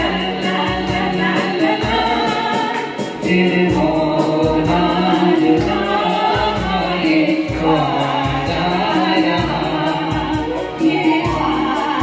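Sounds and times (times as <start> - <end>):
live band playing: 0.0 - 12.0
person singing: 0.0 - 12.0.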